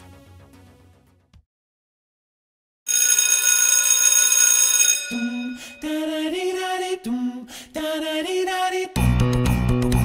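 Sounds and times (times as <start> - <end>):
electric bell ringing: 2.9 - 6.0.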